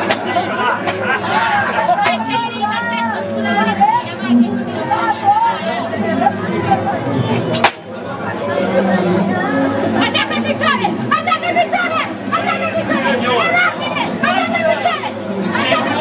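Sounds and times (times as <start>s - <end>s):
people talking and calling out: 0.0s - 16.0s.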